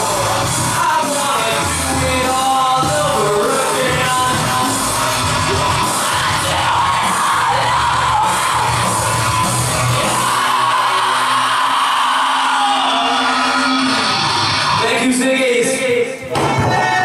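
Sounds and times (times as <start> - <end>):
industrial rock band playing: 0.0 - 17.0.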